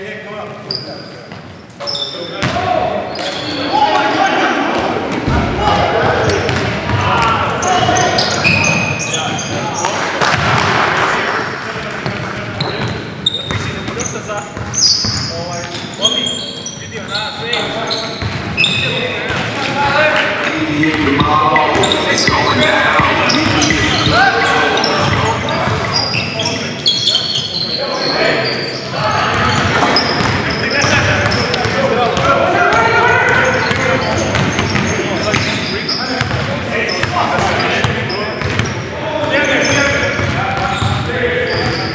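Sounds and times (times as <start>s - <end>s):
echoing voices: 0.0s - 41.9s
sneakers squeaking on court: 0.4s - 4.2s, 4.8s - 10.6s, 12.0s - 19.8s, 20.8s - 41.9s
players calling out: 0.6s - 41.9s
basketball dribbling: 6.0s - 8.0s, 29.3s - 35.6s, 36.2s - 38.7s, 39.7s - 41.8s.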